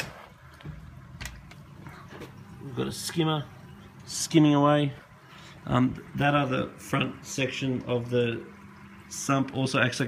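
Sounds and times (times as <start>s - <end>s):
aquarium pumps humming: 0.0s - 10.0s.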